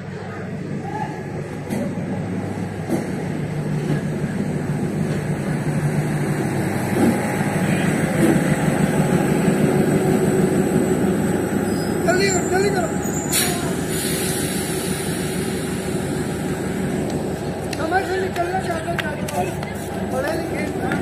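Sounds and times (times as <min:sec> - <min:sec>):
diesel train engine: 0:00.0 - 0:21.0
train rumbling on rails: 0:00.0 - 0:21.0
train knocks: 0:04.9 - 0:11.7.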